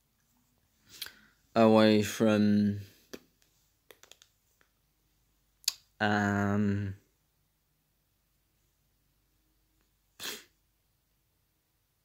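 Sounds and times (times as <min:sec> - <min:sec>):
man's sharp burst of breath: 0:10.2 - 0:10.5.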